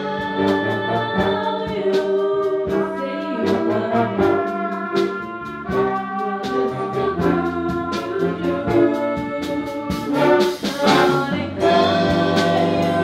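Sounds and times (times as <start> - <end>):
school band playing: 0.0 - 13.0.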